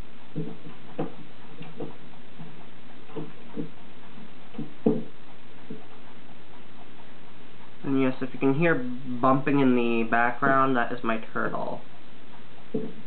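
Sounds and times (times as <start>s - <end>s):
turtle knocking about: 0.0s - 7.0s, 12.6s - 13.0s.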